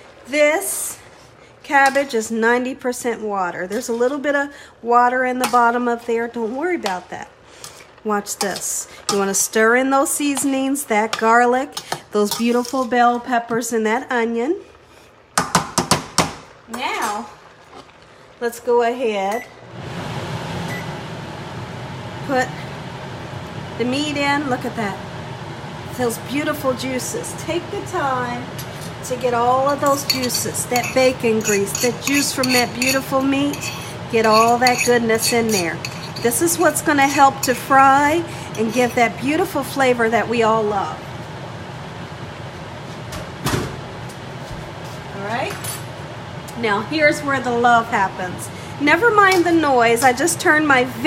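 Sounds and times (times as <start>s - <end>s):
vent fan whirring: 0.0s - 51.0s.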